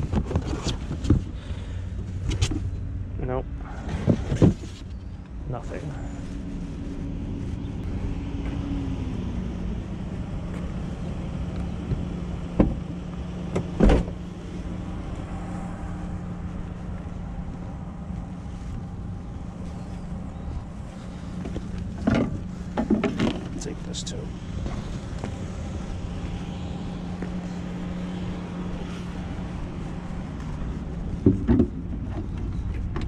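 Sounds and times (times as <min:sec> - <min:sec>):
van engine idling: 0:00.8 - 0:33.0.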